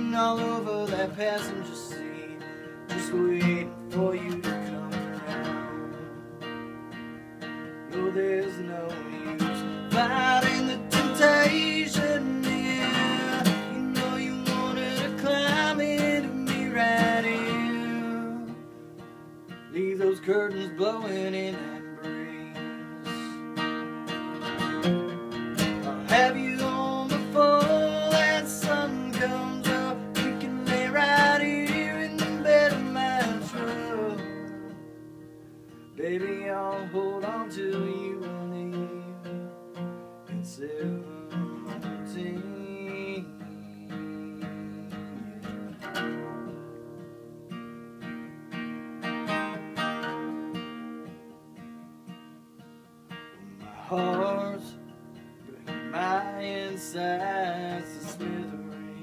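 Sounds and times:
acoustic guitar picking: 0:00.0 - 0:59.0
acoustic guitar strumming: 0:00.0 - 0:59.0.

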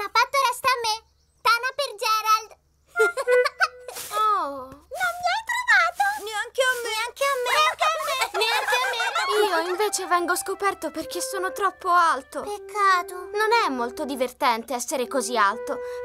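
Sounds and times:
cartoon children's voices speaking: 0:04.1 - 0:15.8.

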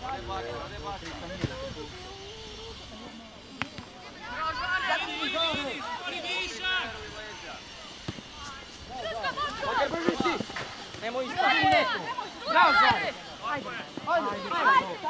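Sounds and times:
young players shouting: 0:04.0 - 0:15.0.

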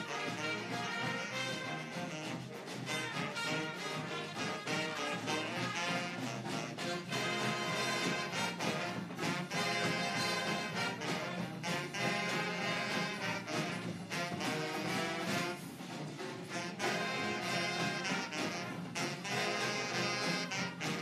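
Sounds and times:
brass and saxophone section: 0:00.0 - 0:21.0
snare and bass drums: 0:00.0 - 0:21.0.

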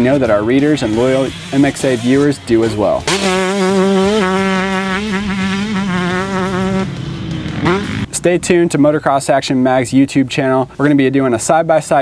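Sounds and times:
two-stroke engine at high revs: 0:00.7 - 0:08.1.

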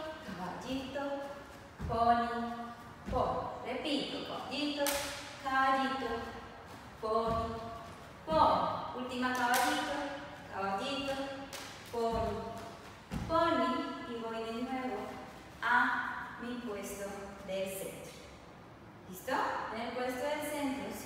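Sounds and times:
feet landing on wooden floor: 0:06.7 - 0:08.8.

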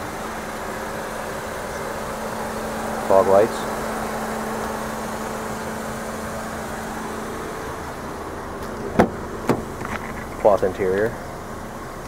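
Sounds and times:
car door latch clicking: 0:08.6 - 0:10.2.

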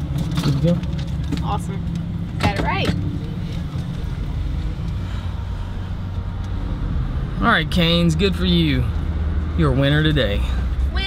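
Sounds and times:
car engine humming: 0:00.0 - 0:11.0.

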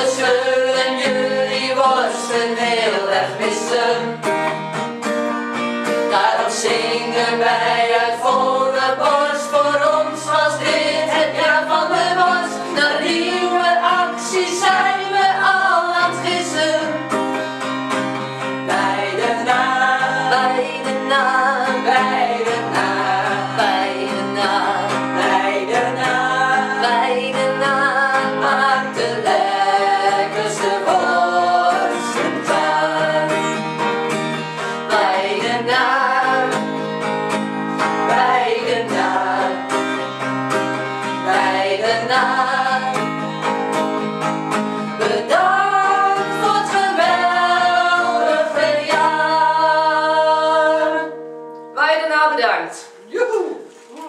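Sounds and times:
women singing together: 0:00.0 - 0:04.4, 0:06.0 - 0:17.6, 0:18.4 - 0:43.3, 0:44.8 - 0:51.2
acoustic guitar: 0:00.0 - 0:54.0.

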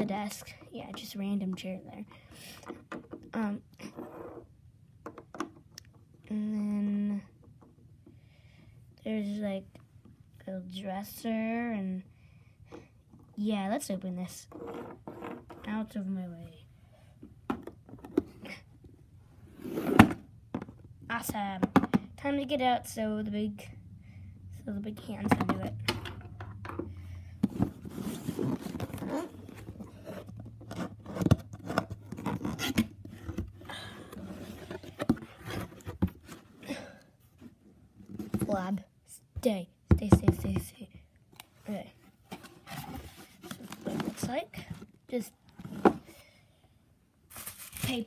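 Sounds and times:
cardboard flaps scraping: 0:27.4 - 0:36.6
paper rustling: 0:47.3 - 0:48.0.

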